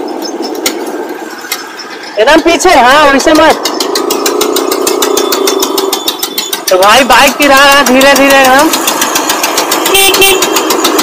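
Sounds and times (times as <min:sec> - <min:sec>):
motorcycle road noise: 0:00.0 - 0:11.0.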